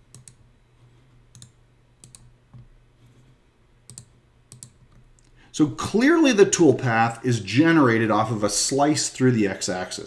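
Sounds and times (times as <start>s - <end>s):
low steady hum: 0.0s - 10.0s
computer mouse clicks: 0.1s - 3.2s, 3.9s - 5.4s.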